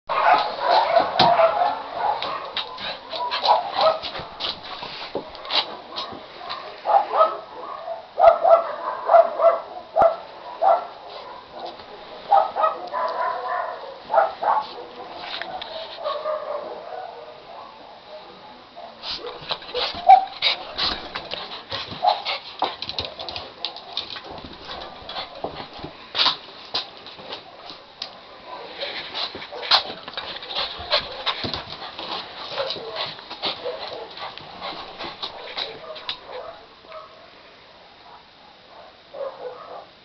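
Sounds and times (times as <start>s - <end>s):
dog paws clicking and scuffling: 0.1s - 7.3s, 10.0s - 16.4s, 19.0s - 37.1s.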